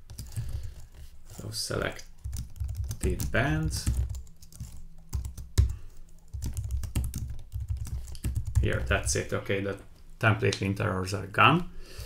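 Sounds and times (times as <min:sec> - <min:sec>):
typing on computer keyboard: 0:00.1 - 0:09.2.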